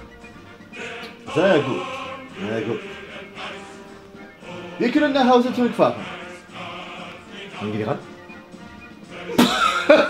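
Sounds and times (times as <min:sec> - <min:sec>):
faint background music: 0:00.0 - 0:10.0
man laughing loudly: 0:09.2 - 0:10.0.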